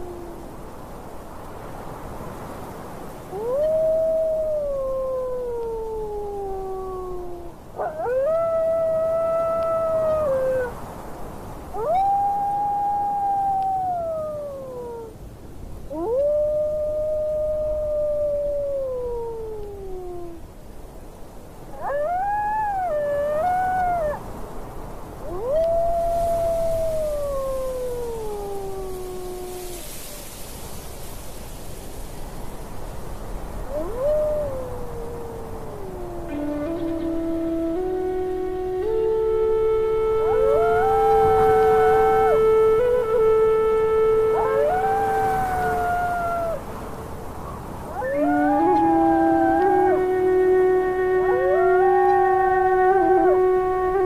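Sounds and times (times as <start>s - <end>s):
wind-like hiss: 0.0s - 54.0s
wolves howling: 3.3s - 10.8s, 11.7s - 15.1s, 15.9s - 20.4s, 21.8s - 24.3s, 25.2s - 29.8s, 33.7s - 46.7s, 47.8s - 54.0s.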